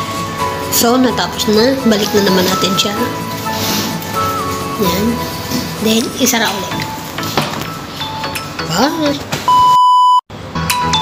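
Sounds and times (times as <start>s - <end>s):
background music: 0.0s - 9.4s, 10.4s - 11.0s
electronic beep: 9.5s - 10.2s.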